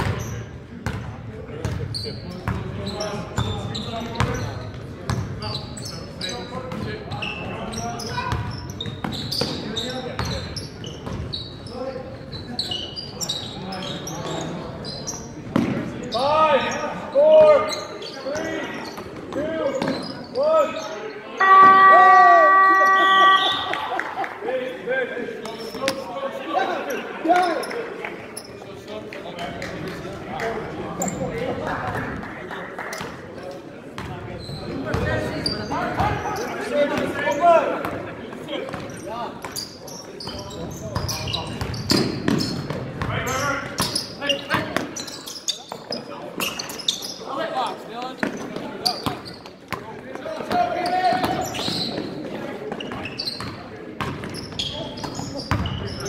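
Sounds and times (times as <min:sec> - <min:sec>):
sneakers squeaking: 0:00.0 - 0:23.8, 0:25.4 - 0:26.1, 0:26.8 - 0:28.8, 0:31.0 - 0:32.2, 0:32.9 - 0:56.0.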